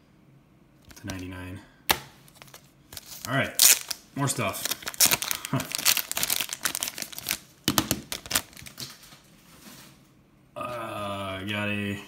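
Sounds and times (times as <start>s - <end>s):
plastic sleeve crinkling: 2.3s - 9.9s.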